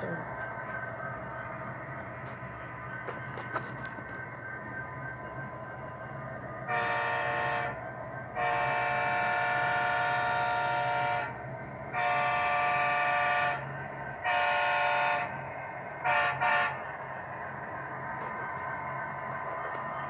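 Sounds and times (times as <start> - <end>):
steady low hum: 0.0 - 20.0
model locomotive horn chime: 6.6 - 7.8, 8.4 - 13.6, 14.2 - 15.3.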